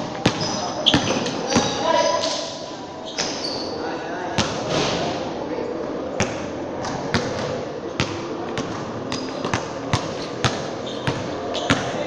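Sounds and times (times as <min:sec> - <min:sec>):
basketball bouncing on hard floor: 0:06.2 - 0:12.0.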